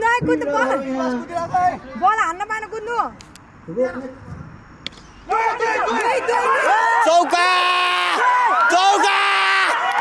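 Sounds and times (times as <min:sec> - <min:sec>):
cricket bat hitting ball: 0:04.8 - 0:06.2
spectators shouting excitedly: 0:05.3 - 0:10.0.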